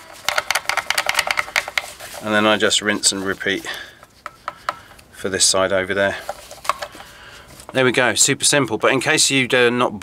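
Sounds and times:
small metal clicks and rattles: 0:00.0 - 0:02.4.

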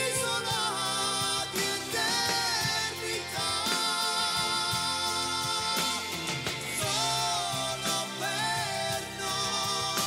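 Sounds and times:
drums keeping beat: 0:00.0 - 0:10.0
keyboards: 0:00.0 - 0:10.0
person singing sliding vocal: 0:00.0 - 0:10.0.

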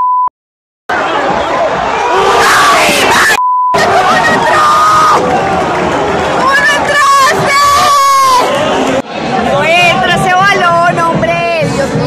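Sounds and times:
stadium crowd shouting and cheering: 0:00.9 - 0:12.0.

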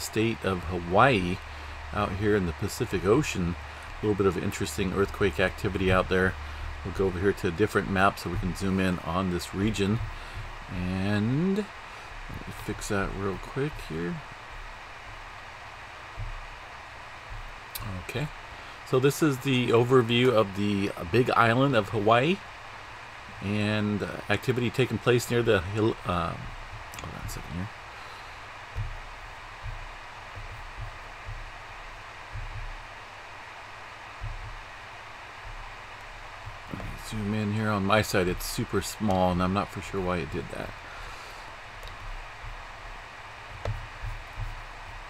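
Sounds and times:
soft low thuds: 0:00.0 - 0:20.4, 0:25.3 - 0:45.0
microphone hiss: 0:00.0 - 0:45.0
faint low thump: 0:16.1 - 0:16.7, 0:17.3 - 0:17.9, 0:28.7 - 0:32.9, 0:34.2 - 0:37.0, 0:41.8 - 0:45.0.

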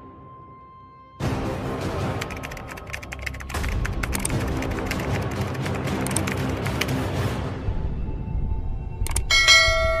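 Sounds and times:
quick clicks: 0:02.2 - 0:07.0
bright bell chime: 0:09.3 - 0:10.0.

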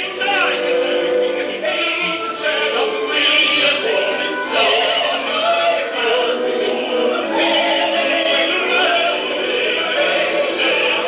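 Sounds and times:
operatic voices singing: 0:00.0 - 0:11.0
orchestral accompaniment: 0:00.0 - 0:11.0.

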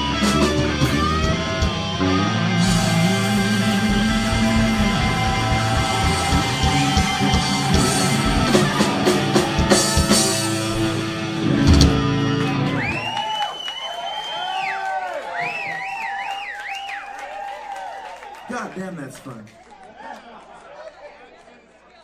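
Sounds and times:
live rock band playing: 0:00.0 - 0:13.2.

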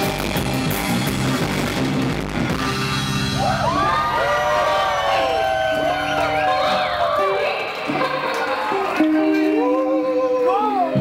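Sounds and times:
surf rock band playing: 0:00.0 - 0:09.6.

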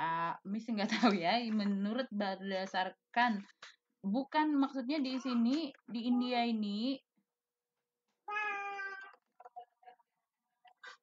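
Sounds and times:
cat meowing: 0:08.3 - 0:09.2.

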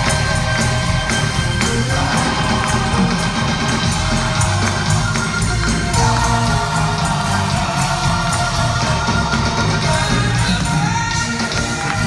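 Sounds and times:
gospel choir and band: 0:00.0 - 0:12.0.

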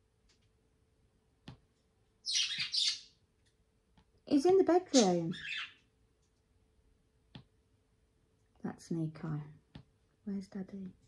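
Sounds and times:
talking bird mimicking speech: 0:04.8 - 0:05.7.

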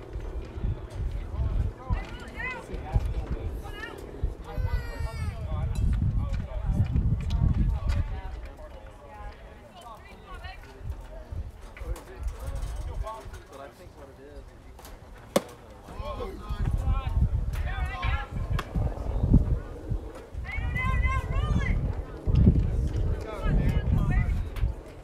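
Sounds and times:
spectators chatting: 0:00.0 - 0:25.0
baseball smacking into mitt: 0:15.3 - 0:15.7.

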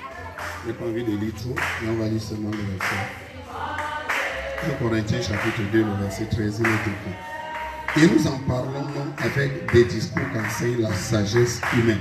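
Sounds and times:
group singing chant-like: 0:02.6 - 0:12.0.

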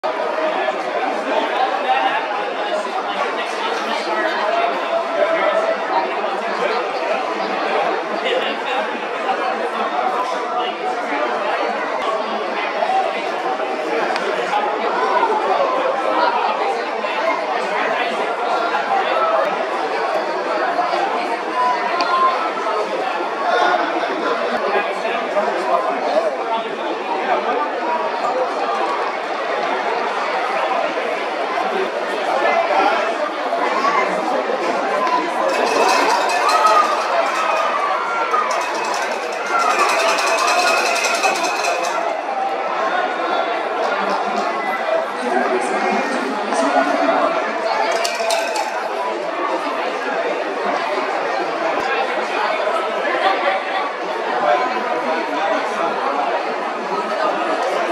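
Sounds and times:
crowd chatter: 0:00.0 - 0:57.9.

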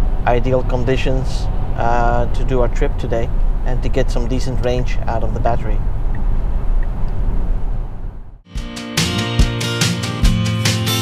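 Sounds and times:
road and tyre noise inside car: 0:00.0 - 0:08.4
background guitar music: 0:08.5 - 0:11.0.

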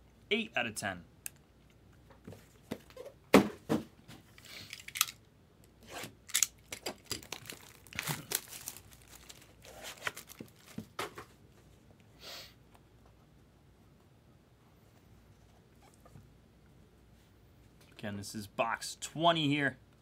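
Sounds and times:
plastic wrap tearing and crinkling: 0:06.3 - 0:11.0.

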